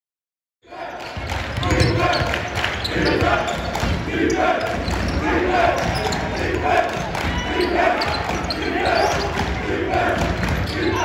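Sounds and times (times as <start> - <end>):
voices in a gym: 0.6 - 11.0.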